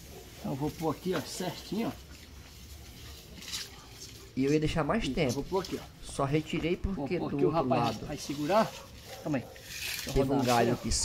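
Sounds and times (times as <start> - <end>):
soft rustle of branch: 0.0 - 6.8, 7.5 - 11.0.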